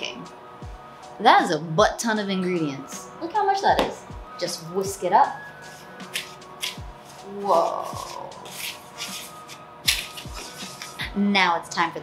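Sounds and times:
bass beat of background music: 0.0s - 2.0s, 2.6s - 11.3s.

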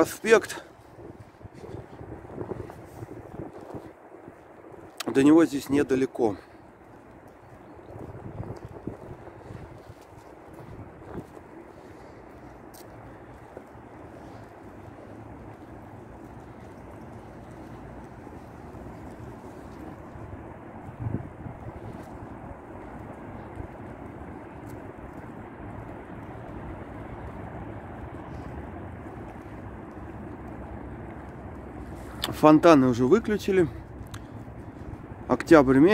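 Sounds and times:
distant road traffic hum: 0.0s - 35.9s.

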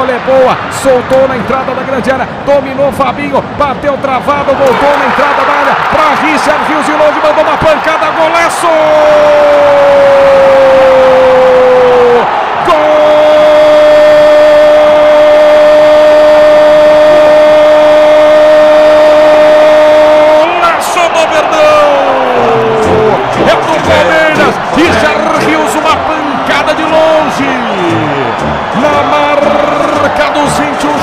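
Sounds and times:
commentator speaking: 0.0s - 9.2s, 20.4s - 31.0s.

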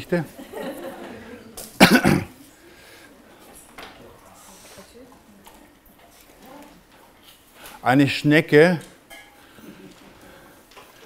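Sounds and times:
loud cough: 1.8s - 2.4s.

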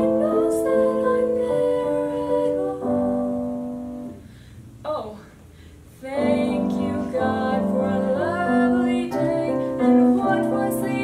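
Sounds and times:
woman singing: 0.0s - 3.5s, 6.0s - 11.0s
piano accompaniment: 0.0s - 4.5s, 6.0s - 11.0s.

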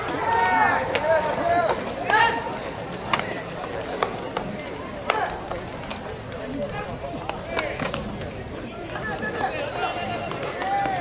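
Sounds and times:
baseballs cracking off bats: 0.0s - 11.0s
players shouting: 0.0s - 11.0s.

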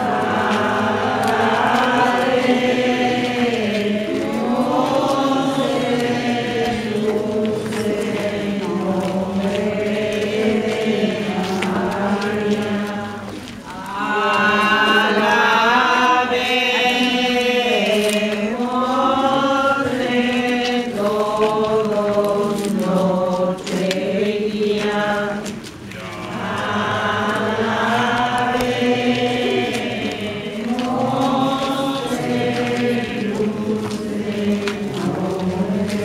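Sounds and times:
crowd singing a hymn: 0.0s - 36.0s.

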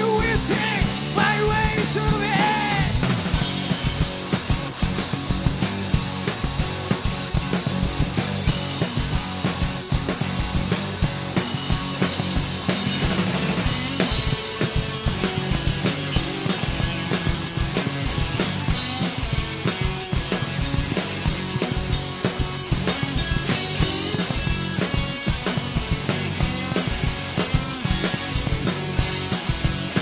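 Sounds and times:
bass guitar: 0.0s - 30.0s
drum kit: 0.0s - 30.0s
electric guitars: 0.0s - 30.0s.

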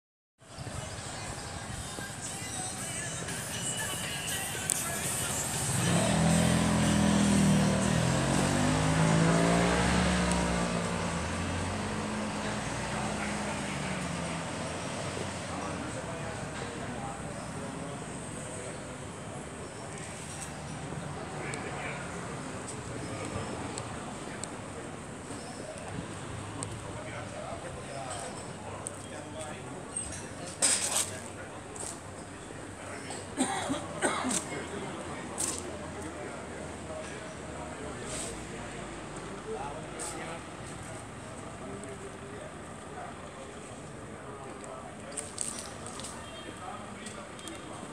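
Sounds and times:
distant voices chattering: 0.4s - 47.9s
street traffic: 0.4s - 47.9s.

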